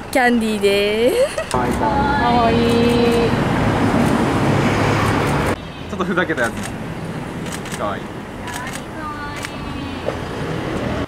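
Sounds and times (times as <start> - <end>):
street traffic hiss: 0.0 - 11.0.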